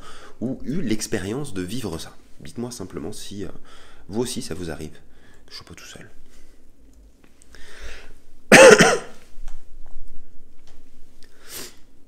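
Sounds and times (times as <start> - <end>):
man coughing: 8.5 - 9.2.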